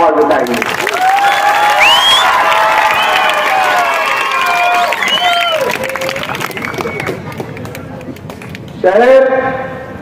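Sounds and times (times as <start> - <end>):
crowd applause: 0.5 - 8.6
crowd noise: 0.5 - 8.8.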